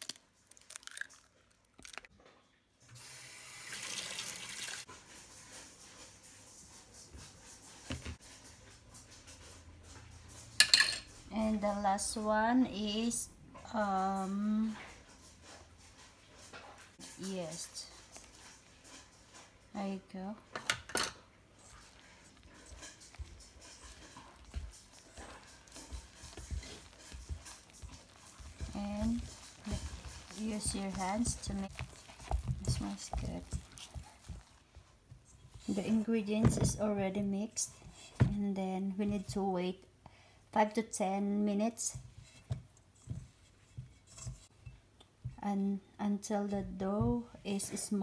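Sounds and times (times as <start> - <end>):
water running from tap: 3.0 - 4.9
hand mixing flour in metal bowl: 13.0 - 20.5, 21.5 - 39.5.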